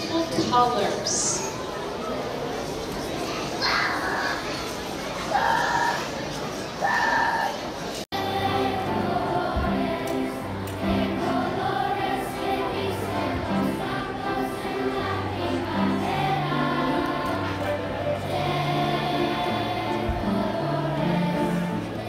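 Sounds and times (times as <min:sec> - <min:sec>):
children's choir singing: 0:08.1 - 0:22.0.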